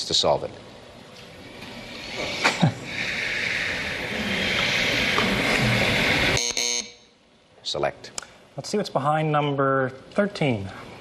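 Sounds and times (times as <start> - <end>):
short electronic buzzer: 6.4 - 7.1.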